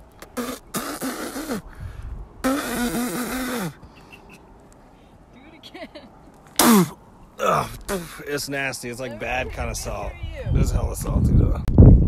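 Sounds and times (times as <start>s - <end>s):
man's raspy vocal noise: 0.2s - 1.8s, 2.4s - 3.8s, 6.6s - 8.3s
man grunting: 6.6s - 8.2s.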